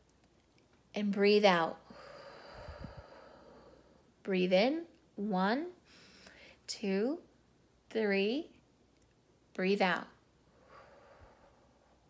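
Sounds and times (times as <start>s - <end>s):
woman breathing out: 1.9s - 4.1s.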